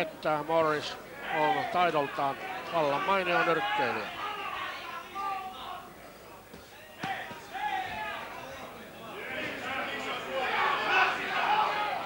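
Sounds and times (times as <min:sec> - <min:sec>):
crowd murmur in large hall: 0:00.0 - 0:12.0.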